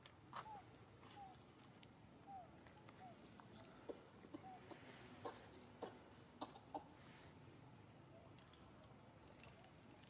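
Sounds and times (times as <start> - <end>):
faint animal clucking calls: 2.3 - 7.1.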